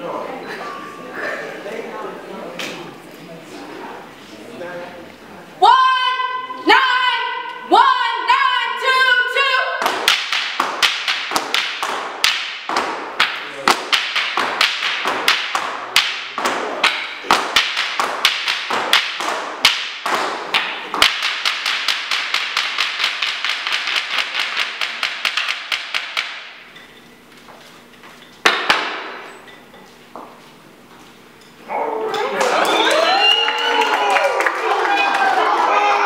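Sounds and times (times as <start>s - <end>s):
canes rapping a hard floor: 9.8s - 26.8s, 28.4s - 29.3s.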